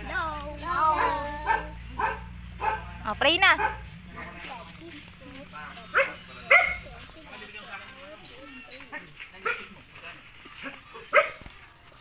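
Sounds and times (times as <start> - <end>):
faint voices: 0.0 - 12.0
dog barking: 0.9 - 4.4, 5.9 - 6.9, 9.4 - 9.7, 11.1 - 11.4.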